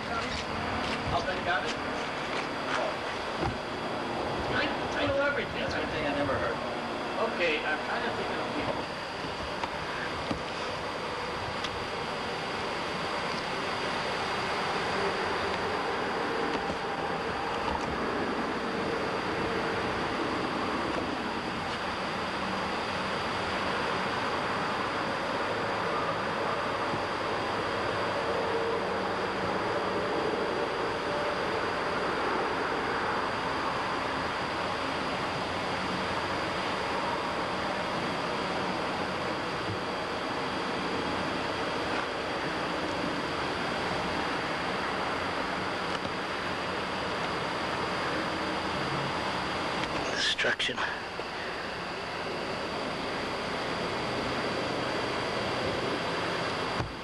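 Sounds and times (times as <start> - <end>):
faint steady high tone: 4.7 - 56.8.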